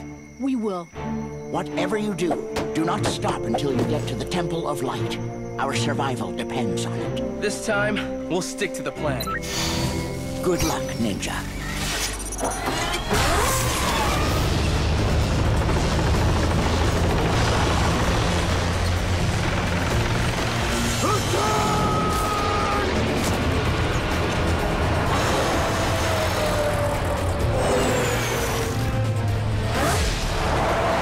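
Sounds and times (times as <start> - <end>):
action music score: 0.0 - 31.0.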